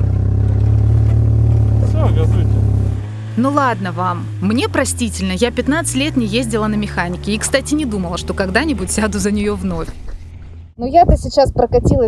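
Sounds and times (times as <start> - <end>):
buggy engine under heavy throttle: 0.0 - 11.8.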